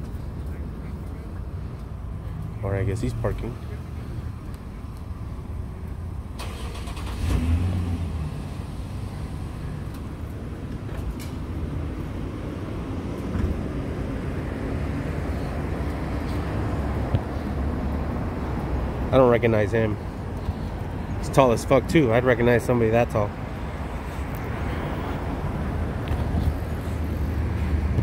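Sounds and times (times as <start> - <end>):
car engine rumbling: 0.0 - 28.0.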